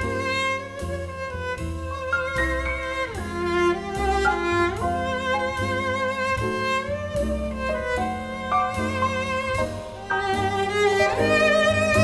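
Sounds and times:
cello playing slow melody: 0.0 - 12.0
low bass notes: 0.0 - 12.0.

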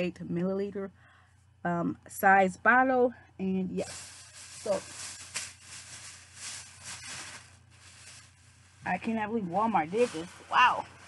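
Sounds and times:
plastic bag rustling: 3.8 - 11.0.

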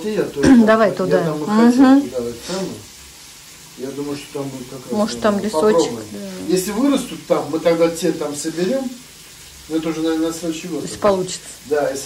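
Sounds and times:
fish sizzling in a pan: 0.0 - 12.0
voices: 3.8 - 9.0.

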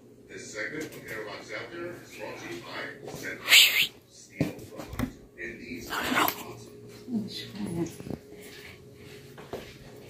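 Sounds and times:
small dog vocalizing: 3.4 - 3.9, 5.9 - 6.5.

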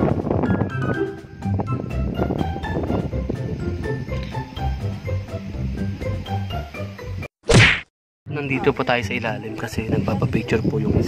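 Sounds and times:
background music: 0.0 - 7.3
whoosh and hit sound effect: 7.5 - 7.9.

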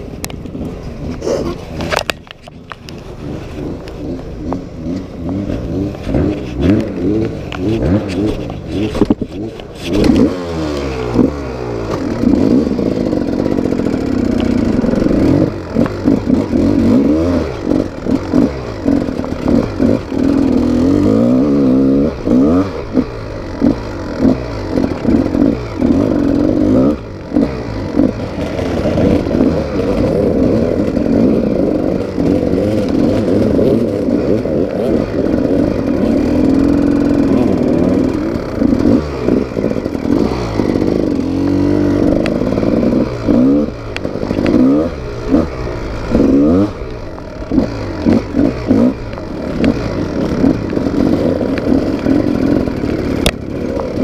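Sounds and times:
dirt bike engine revving: 2.8 - 54.0.

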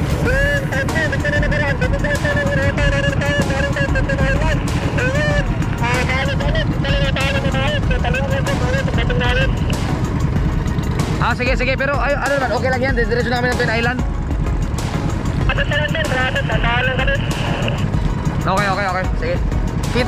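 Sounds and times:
boat engine rumbling: 0.0 - 20.0.

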